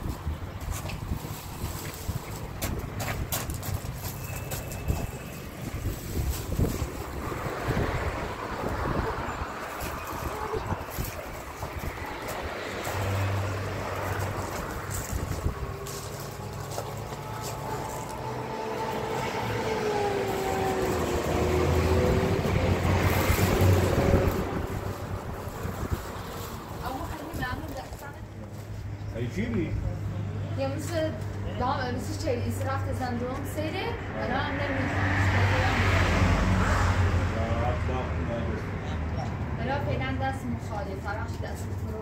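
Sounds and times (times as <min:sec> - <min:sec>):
wind on microphone: 0:00.0 - 0:04.1, 0:04.7 - 0:18.0, 0:19.0 - 0:27.9.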